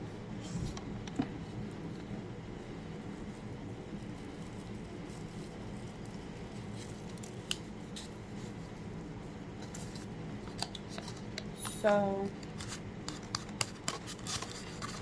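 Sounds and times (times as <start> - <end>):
steady low hum: 0.0 - 15.0
paper packet crinkling: 9.6 - 15.0.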